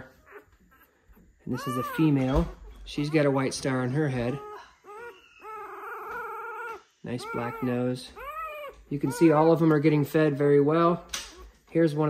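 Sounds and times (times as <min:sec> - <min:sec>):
puppy crying: 0:00.0 - 0:10.2.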